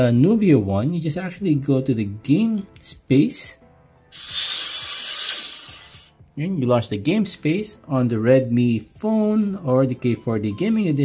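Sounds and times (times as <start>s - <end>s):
hissing mechanical whoosh: 4.1s - 6.2s.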